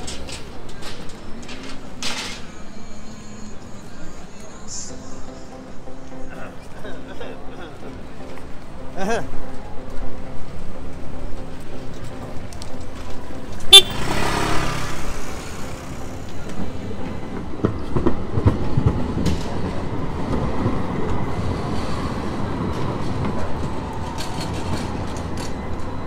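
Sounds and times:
street noise: 0.0s - 26.0s
tram rolling on rails: 0.0s - 26.0s
horn toot: 13.6s - 15.2s.

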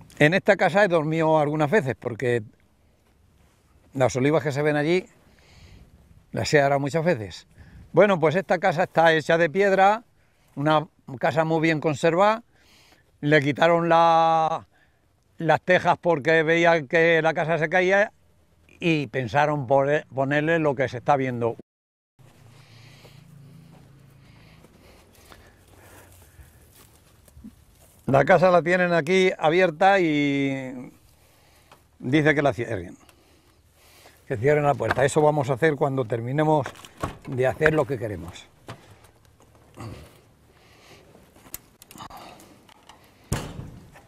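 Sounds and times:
footsteps on dry dirt: 2.5s - 6.8s, 22.2s - 28.6s, 33.2s - 42.6s
heavy door thud: 37.0s - 37.5s, 43.3s - 44.0s.

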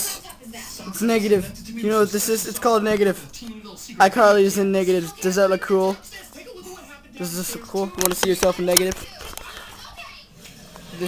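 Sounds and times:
faint children's voices: 4.8s - 11.0s.

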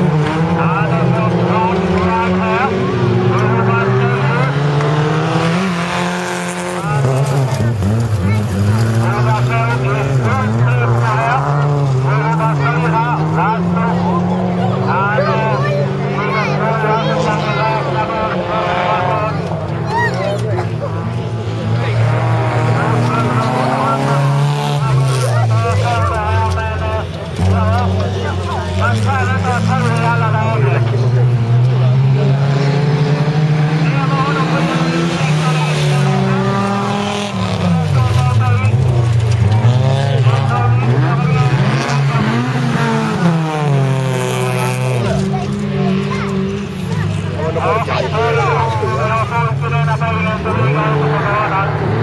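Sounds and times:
race car engines revving: 0.0s - 52.0s.

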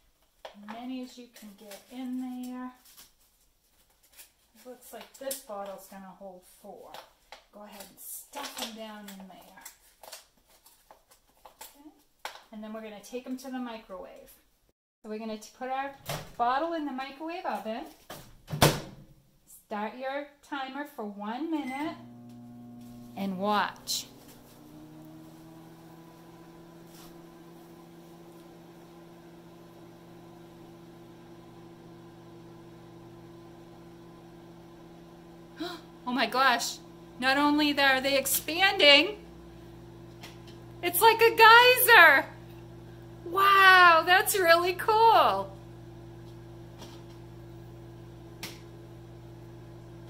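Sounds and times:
microwave oven humming: 21.9s - 50.0s.

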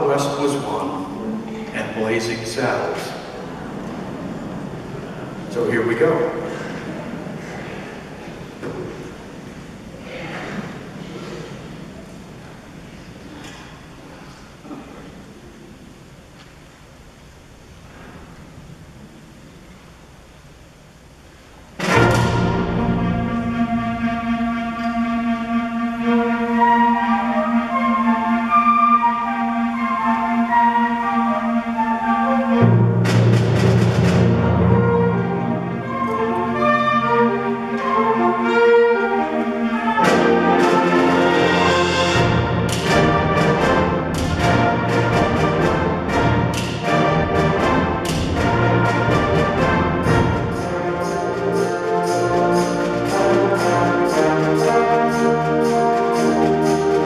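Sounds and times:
concert band playing: 21.8s - 57.0s
heavy low brass: 21.8s - 57.0s
steady percussion beat: 32.8s - 35.1s, 40.0s - 57.0s.

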